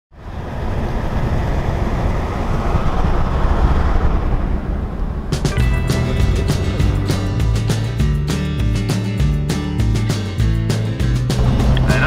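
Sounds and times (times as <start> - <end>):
road and wind noise inside car: 0.1 - 5.5
music with plucked notes: 5.4 - 12.0.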